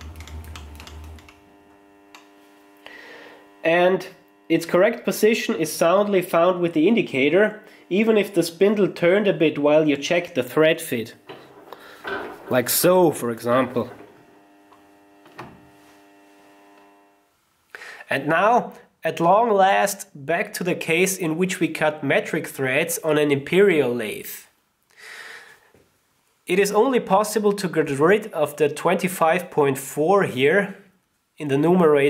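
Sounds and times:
steady low hum: 0.0s - 17.3s.

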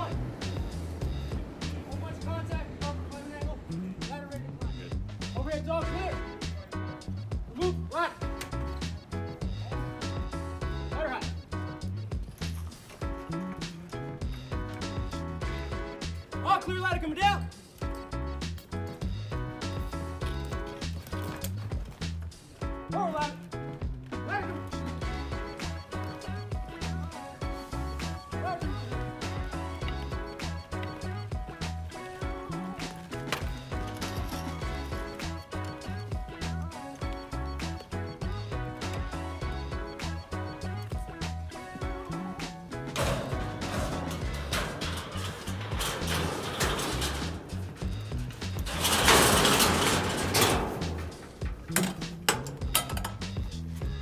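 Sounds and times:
background music with beat: 0.0s - 54.0s
ladder scraping into compartment: 42.8s - 53.4s.

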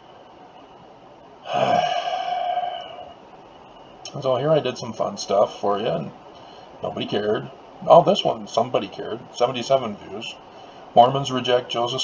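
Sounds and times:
man sighing: 1.4s - 3.2s.

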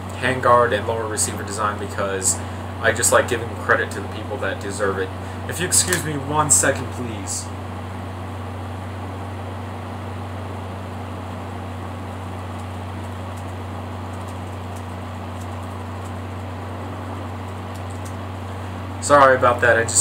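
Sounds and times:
room noise hiss: 0.0s - 20.0s
steady low hum: 0.0s - 20.0s.

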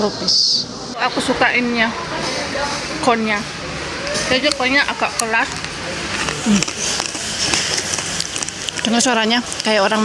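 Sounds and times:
chewing crunchy snack: 5.5s - 9.8s.

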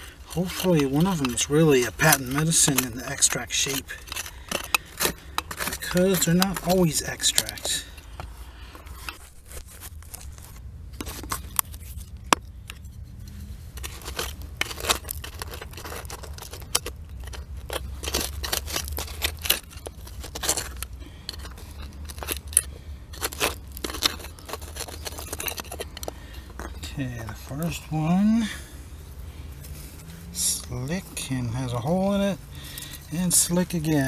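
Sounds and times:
metal tool scraping soil: 0.0s - 28.8s, 29.6s - 34.0s
steady low rumble: 3.8s - 34.0s.

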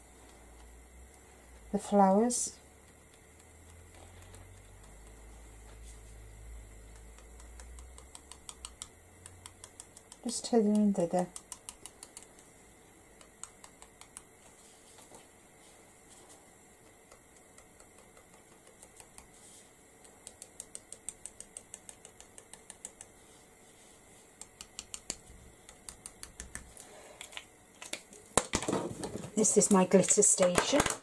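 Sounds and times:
pen tip tapping on card: 6.9s - 12.3s.

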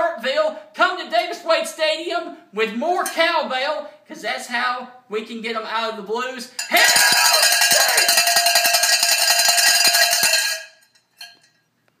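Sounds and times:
cowbell clanging rapidly: 6.6s - 11.4s.

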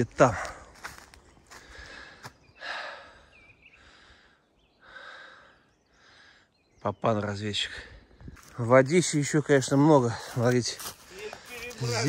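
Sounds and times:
footsteps on dead leaves: 0.3s - 2.4s, 10.1s - 12.0s.

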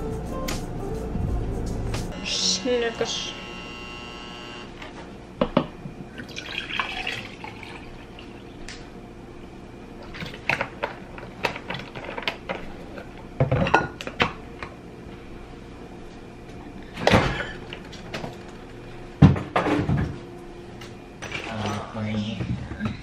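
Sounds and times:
juice pouring into plastic cup: 6.2s - 8.6s.

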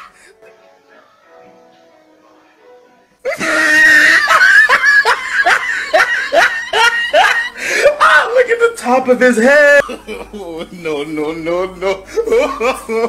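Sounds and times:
person laughing hard: 3.3s - 8.2s, 12.0s - 13.0s.

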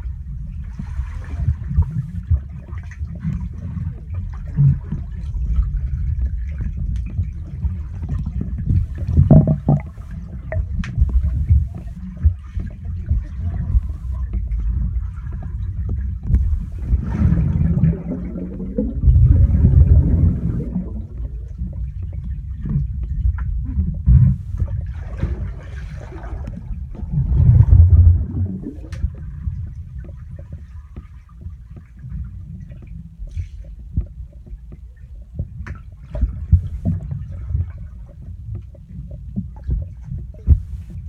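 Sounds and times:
muffled underwater rumble: 0.0s - 41.0s
water crackling and swishing: 0.0s - 41.0s.

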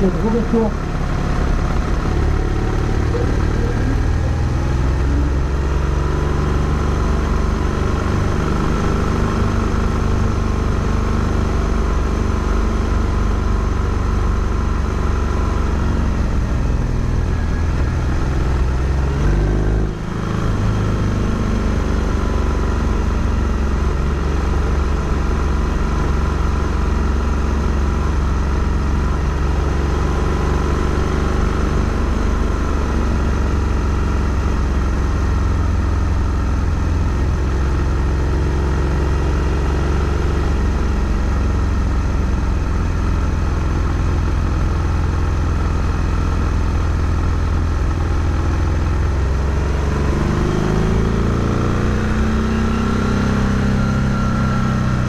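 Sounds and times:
vehicle engine running: 0.0s - 55.0s.

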